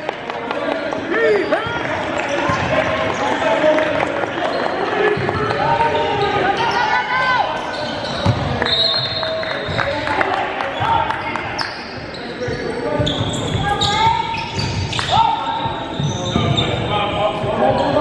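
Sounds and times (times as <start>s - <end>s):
sneaker squeaks: 1.2s - 3.6s, 4.4s - 10.1s, 10.7s - 18.0s.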